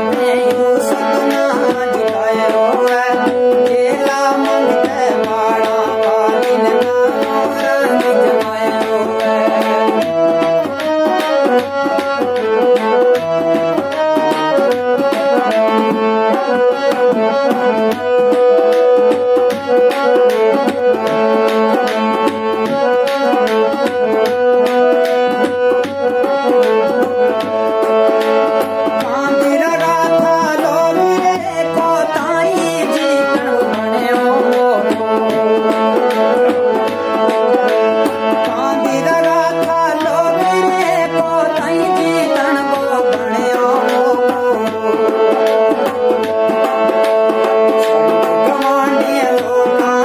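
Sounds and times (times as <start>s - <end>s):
harmonium melody: 0.0s - 50.0s
tabla strokes: 0.0s - 50.0s.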